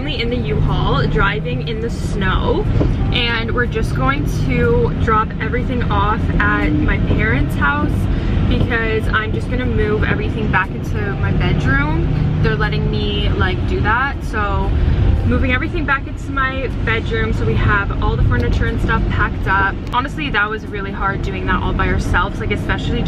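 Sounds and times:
road noise: 0:00.0 - 0:23.0
van engine rumble: 0:00.0 - 0:23.0
woman talking: 0:00.0 - 0:23.0.

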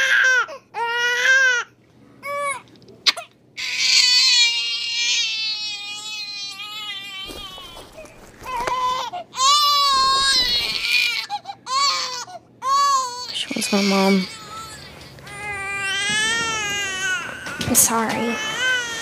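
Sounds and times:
newborn baby crying: 0:00.0 - 0:19.0.

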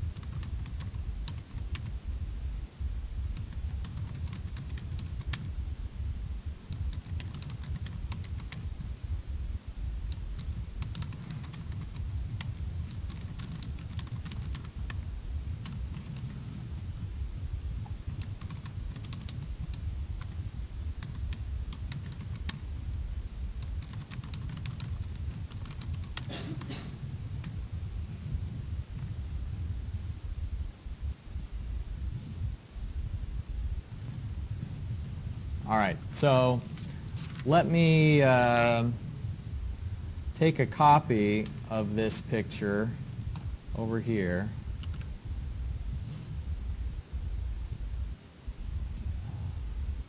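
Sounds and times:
low room rumble: 0:00.0 - 0:50.0
steady low hum: 0:00.0 - 0:50.0
computer keyboard typing: 0:00.2 - 0:01.9, 0:03.4 - 0:05.5, 0:06.7 - 0:08.6, 0:10.1 - 0:15.0, 0:15.6 - 0:16.9, 0:17.8 - 0:20.4, 0:21.0 - 0:22.6, 0:23.6 - 0:26.3, 0:33.9 - 0:34.2, 0:43.0 - 0:44.0, 0:44.8 - 0:45.1.

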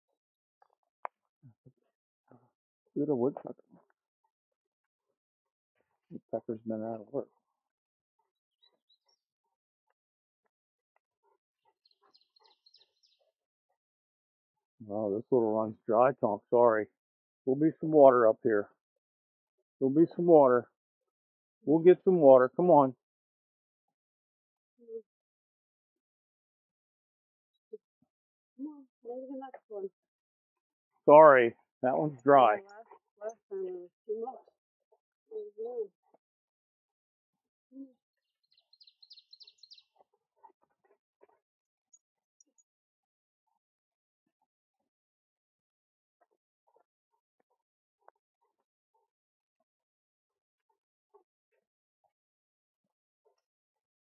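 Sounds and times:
bird chirping: 0:11.6 - 0:13.3, 0:37.8 - 0:40.5
songbird singing: 0:11.8 - 0:13.3, 0:37.7 - 0:40.0.

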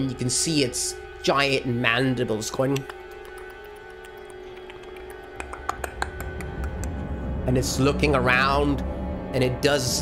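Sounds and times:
suspense background music: 0:00.0 - 0:10.0
person making clicking sounds: 0:02.7 - 0:07.0.

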